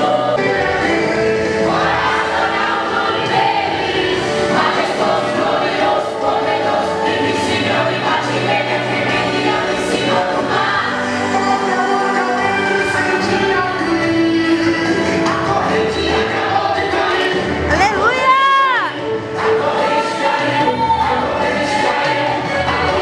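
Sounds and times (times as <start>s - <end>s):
choir singing worship song: 0.0s - 17.8s, 18.8s - 23.0s.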